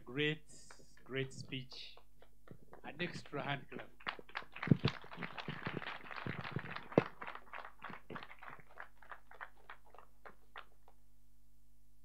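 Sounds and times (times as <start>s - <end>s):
audience applauding: 3.7s - 10.9s.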